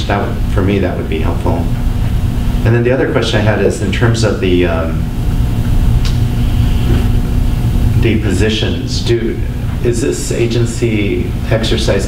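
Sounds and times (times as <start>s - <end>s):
faint hum: 0.0s - 12.0s
low room rumble: 0.0s - 12.0s.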